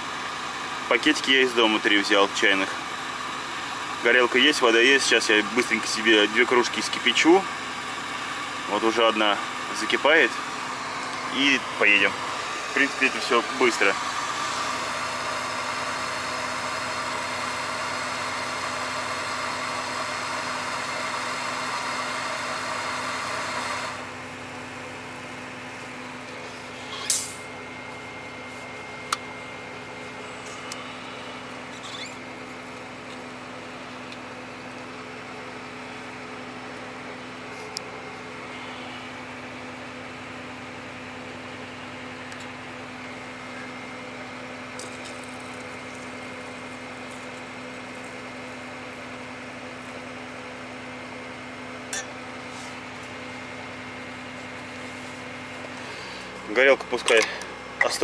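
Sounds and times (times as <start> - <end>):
tractor engine idling: 0.0 - 58.0.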